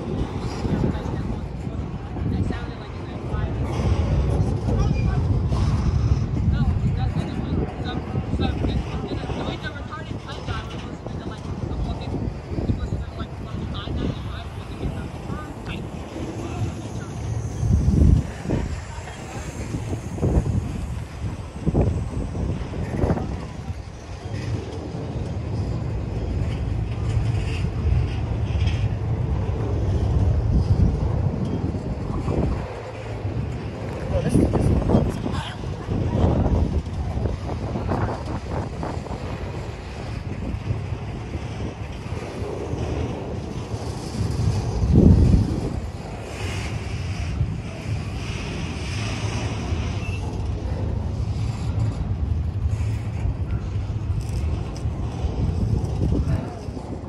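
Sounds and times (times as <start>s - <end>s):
freight train wheels rumbling on rails: 0.0s - 57.0s
wind buffeting microphone: 0.0s - 57.0s.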